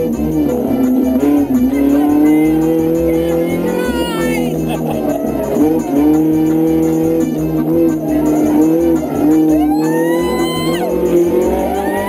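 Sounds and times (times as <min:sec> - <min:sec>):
car engine running hard: 0:00.0 - 0:12.0
music with steady beat: 0:00.0 - 0:12.0
tyres squealing: 0:01.3 - 0:12.0.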